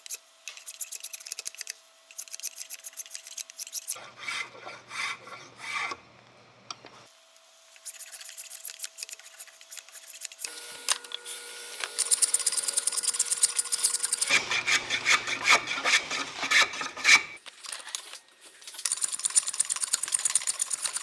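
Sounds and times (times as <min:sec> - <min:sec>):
rasp filing wood: 0:03.9 - 0:06.0, 0:12.4 - 0:17.4.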